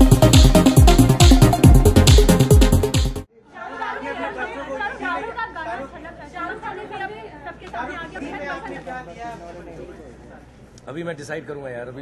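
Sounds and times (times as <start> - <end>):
crowd chatter: 3.4 - 10.8.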